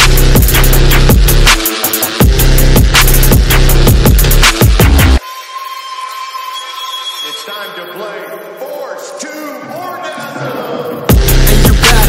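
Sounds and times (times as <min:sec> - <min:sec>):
music: 0:00.0 - 0:12.0
high electronic beep tone: 0:05.2 - 0:09.2
voice sample: 0:07.2 - 0:12.0.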